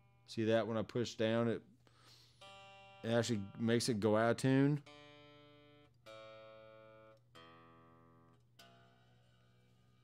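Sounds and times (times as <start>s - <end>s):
electric guitar strings plucked: 2.4s - 10.0s.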